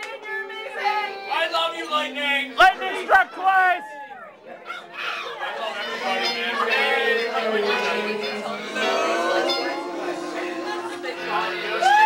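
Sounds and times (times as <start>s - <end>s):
crowd chatter: 0.0s - 12.0s
backing track music: 4.5s - 12.0s
person singing into microphone: 5.6s - 12.0s.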